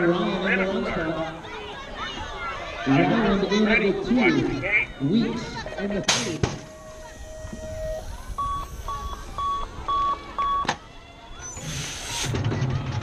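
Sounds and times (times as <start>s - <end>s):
short electronic beeps: 6.7s - 10.7s.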